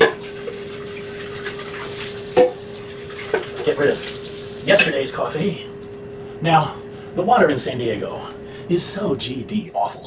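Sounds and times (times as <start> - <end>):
pot clanking: 0.0 - 3.7
tap running into sink: 0.0 - 5.0.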